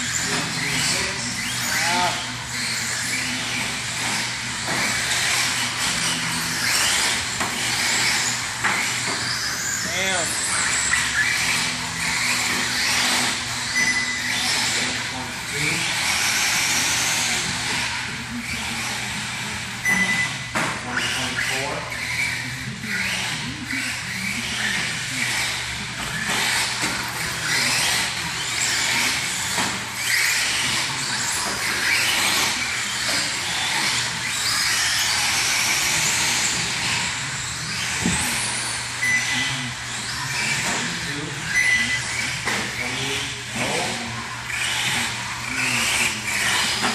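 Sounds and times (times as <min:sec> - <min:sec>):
toy truck motor whining: 0:00.0 - 0:46.9
short high beeps: 0:13.7 - 0:14.3, 0:19.8 - 0:20.5, 0:39.0 - 0:39.4.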